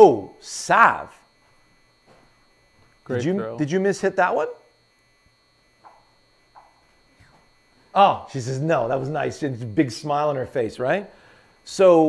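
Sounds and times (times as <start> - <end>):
faint electrical hum: 0.0 - 12.0
thin high whine: 0.0 - 12.0.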